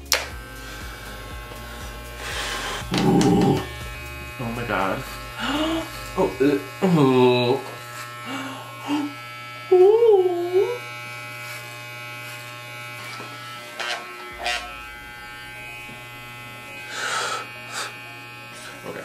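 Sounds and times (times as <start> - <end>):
electric hair clipper buzzing: 0.0 - 19.0
person vocalizing ooh: 2.9 - 3.7, 9.7 - 10.8.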